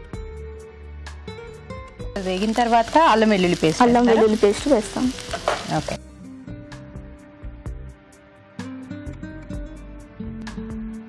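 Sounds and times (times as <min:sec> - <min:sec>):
onions sizzling in a pan: 0:02.2 - 0:06.0.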